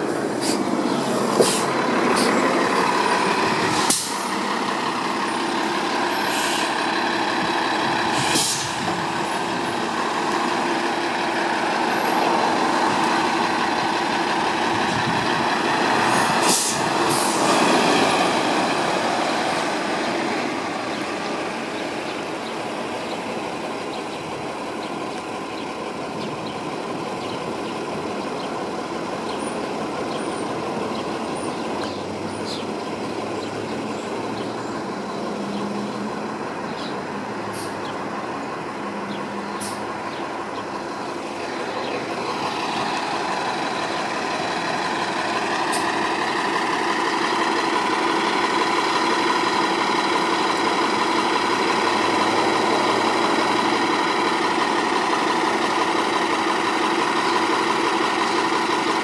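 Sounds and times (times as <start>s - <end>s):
diesel bus engines: 0.0s - 59.0s
air brake hisses: 8.1s - 8.8s, 16.3s - 17.5s.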